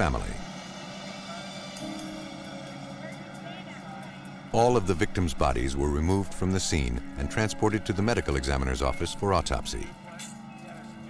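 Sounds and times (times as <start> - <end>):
drone of sustained tones: 0.0 - 11.0.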